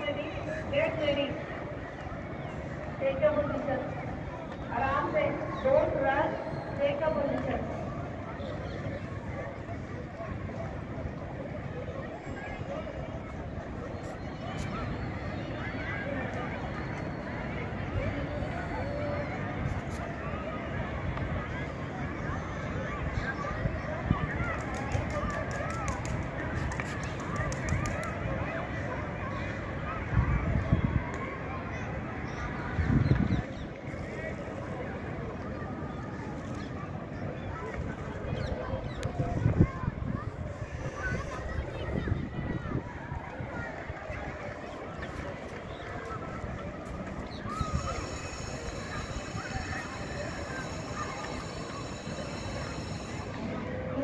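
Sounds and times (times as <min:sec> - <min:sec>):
distant children's voices: 0:00.0 - 0:54.0
wind rumble on microphone: 0:29.7 - 0:31.6, 0:32.2 - 0:33.8, 0:37.8 - 0:49.9
faint steady high tones: 0:47.4 - 0:54.0.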